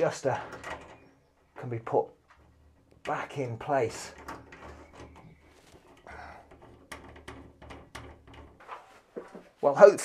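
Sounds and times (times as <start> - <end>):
metal parts clicking and knocking: 0.0 - 1.7, 2.3 - 8.6.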